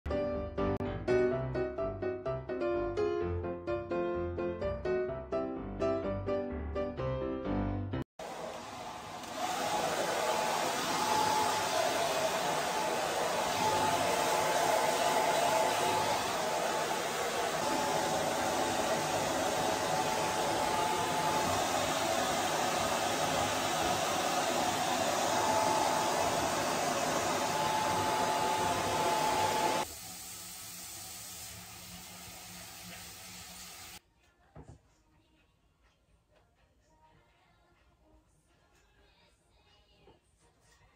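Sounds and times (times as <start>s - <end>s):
hair dryer blowing: 8.2s - 30.2s.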